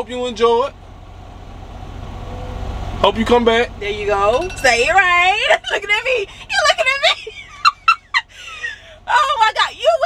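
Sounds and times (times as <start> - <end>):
diesel engine rumble: 0.0 - 10.0.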